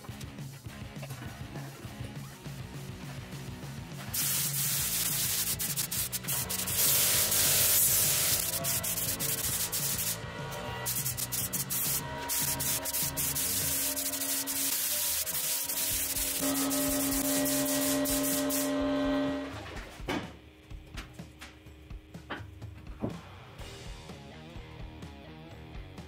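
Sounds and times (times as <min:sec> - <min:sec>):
background music: 0:00.0 - 0:26.0
paint spray gun hissing: 0:04.1 - 0:10.2, 0:10.8 - 0:18.8.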